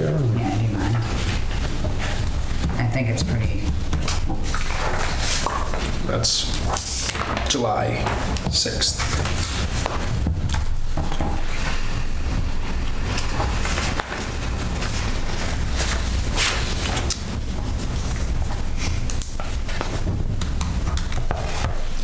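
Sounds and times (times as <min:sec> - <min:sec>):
steady low rumble: 0:00.0 - 0:20.9
paper rustling: 0:00.0 - 0:22.0.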